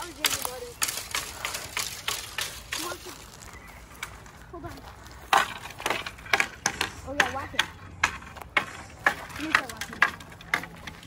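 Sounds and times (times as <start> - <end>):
wooden sticks knocking and cracking: 0.0 - 4.3, 5.0 - 11.0.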